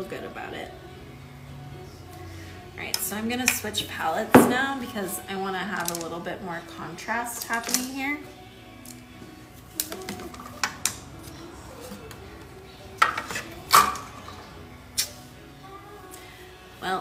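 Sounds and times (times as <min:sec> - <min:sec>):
hard objects clinking and knocking: 0:04.3 - 0:04.7, 0:05.8 - 0:06.1, 0:13.0 - 0:14.4.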